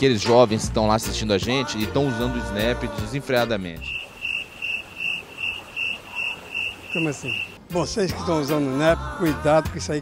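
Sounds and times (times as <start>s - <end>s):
cricket chirping: 3.8s - 7.6s.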